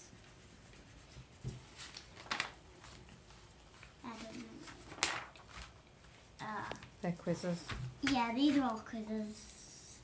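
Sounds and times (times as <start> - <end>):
paper and pencils handled on table: 0.1 - 10.0.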